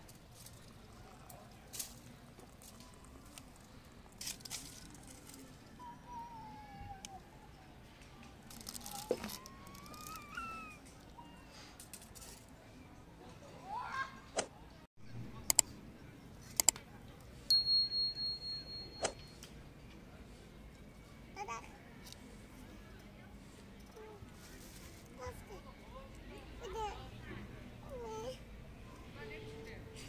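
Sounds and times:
high bell ding: 0:17.5 - 0:19.4.

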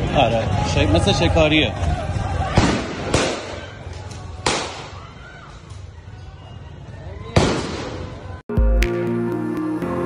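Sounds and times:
street noise: 0:00.0 - 0:10.0
loud gunshot echoing: 0:02.6 - 0:03.6, 0:07.4 - 0:08.0.

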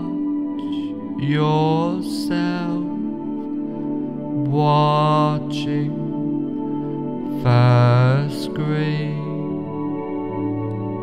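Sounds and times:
slow meditation music drone: 0:00.0 - 0:11.0.

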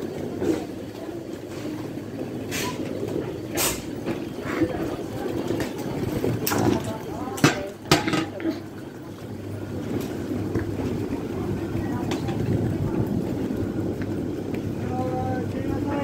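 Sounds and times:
indistinct passenger voices: 0:00.0 - 0:16.0
train humming: 0:00.0 - 0:16.0.

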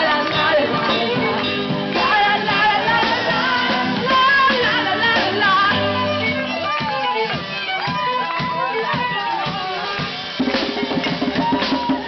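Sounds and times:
accordion melody: 0:00.0 - 0:10.9
violin melody: 0:00.0 - 0:11.3
drums: 0:00.0 - 0:12.0.

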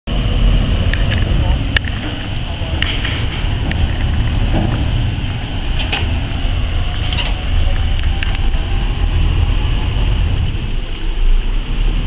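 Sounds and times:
boat engines rumbling: 0:00.1 - 0:12.0.

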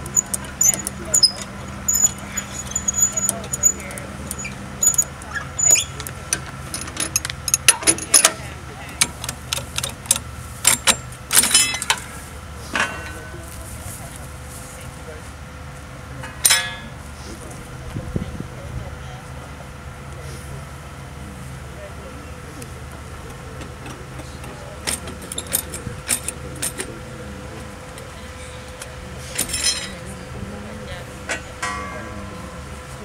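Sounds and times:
metal bars clanking: 0:00.0 - 0:12.1, 0:16.2 - 0:17.0, 0:29.3 - 0:30.1, 0:31.3 - 0:32.7
steady low hum: 0:00.0 - 0:33.0.

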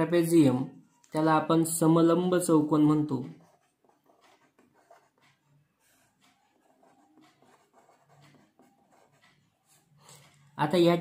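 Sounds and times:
marker pen scratching on paper: 0:01.2 - 0:10.6.

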